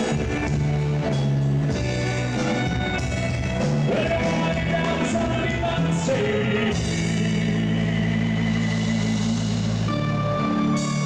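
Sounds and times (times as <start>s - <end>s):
live dance band music: 0.0s - 11.0s.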